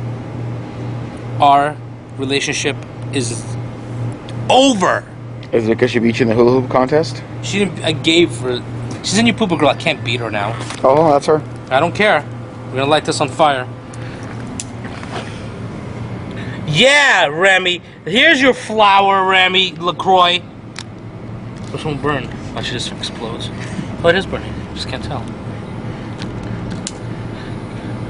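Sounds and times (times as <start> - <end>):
low outdoor rumble: 0.0 - 28.0.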